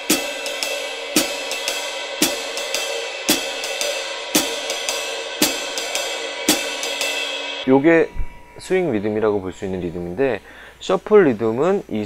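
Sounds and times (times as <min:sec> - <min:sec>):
drum kit swing rhythm: 0:00.0 - 0:07.7
heavy accented drum hit: 0:00.0 - 0:09.2
swung cymbal strokes: 0:00.0 - 0:11.0.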